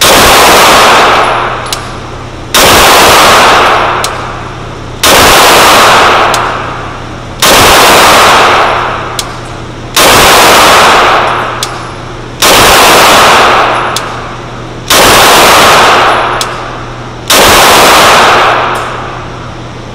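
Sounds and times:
pistol shots with echo: 0.0s - 19.7s.

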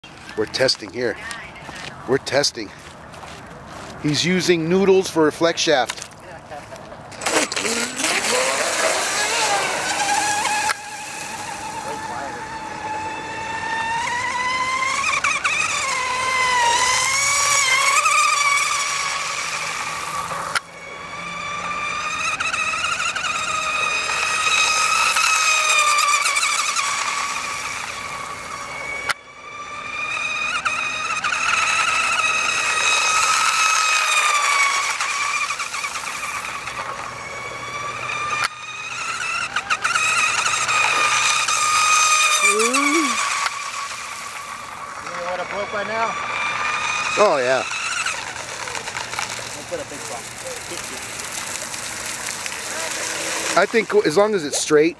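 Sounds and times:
model boat motor whining: 0.0s - 54.9s.

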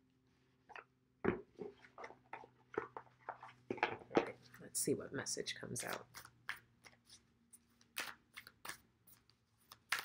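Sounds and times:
cards being shuffled: 5.8s - 10.0s.

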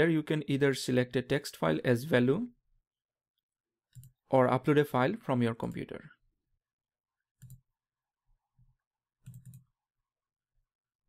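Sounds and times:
faint computer mouse clicks: 7.4s - 7.6s, 9.2s - 9.6s.

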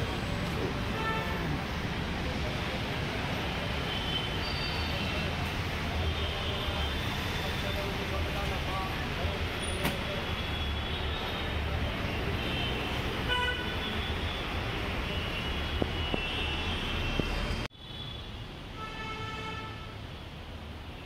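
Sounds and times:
traffic engines rumbling: 0.0s - 21.0s.

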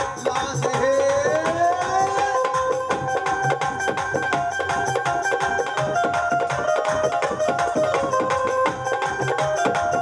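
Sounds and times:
barrel drum beating fast rhythm: 0.0s - 10.0s
melody of held notes: 2.0s - 10.0s.

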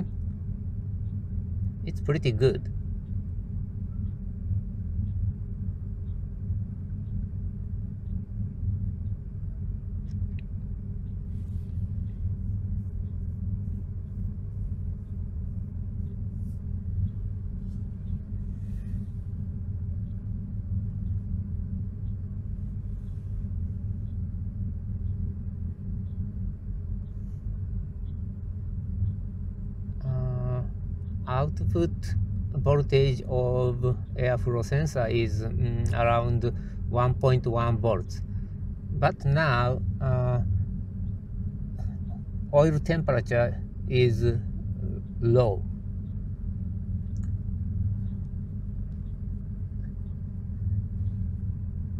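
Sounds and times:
car engine idling: 0.0s - 51.9s.

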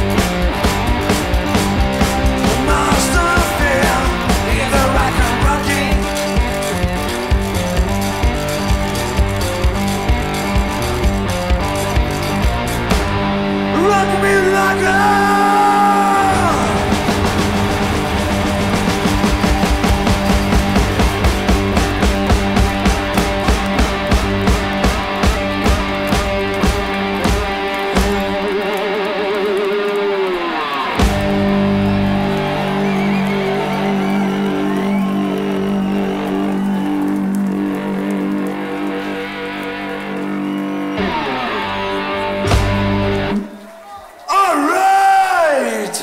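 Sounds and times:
steady drumbeat: 0.0s - 28.7s, 31.0s - 37.2s, 42.4s - 43.5s
electric guitar: 0.0s - 43.6s.

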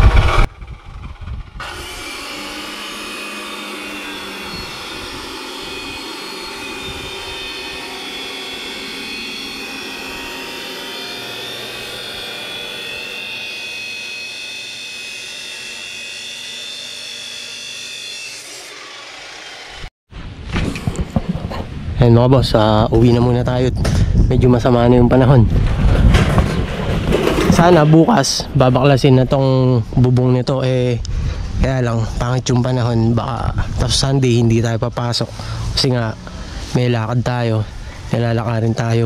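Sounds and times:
chop saw cutting steel: 1.6s - 19.9s.

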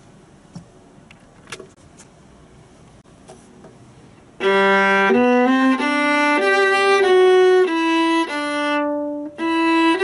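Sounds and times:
viola bowed low note: 4.4s - 10.0s.

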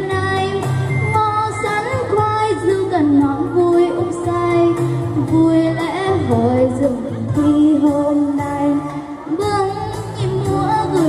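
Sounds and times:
girl singing into a microphone: 0.0s - 11.0s
recorded backing music: 0.0s - 11.0s.

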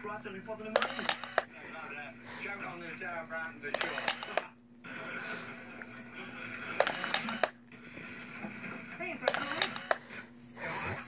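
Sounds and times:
steady low hum: 0.0s - 11.0s
sharp clicks: 2.9s - 4.5s, 6.8s - 7.6s.

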